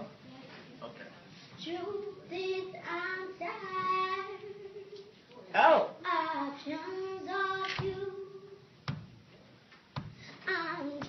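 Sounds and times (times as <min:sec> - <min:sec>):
girl singing unaccompanied: 0:01.5 - 0:05.2, 0:06.0 - 0:09.0, 0:10.0 - 0:11.0.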